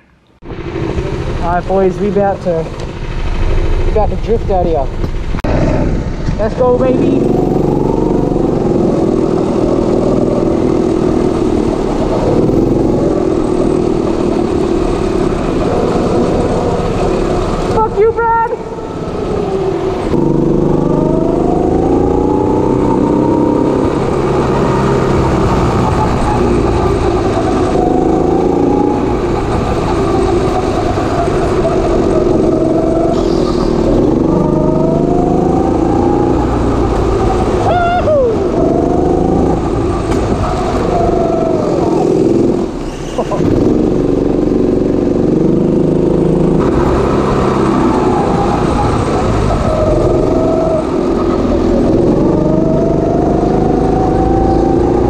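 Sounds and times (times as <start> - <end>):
go-kart engine revving: 0.0 - 55.0.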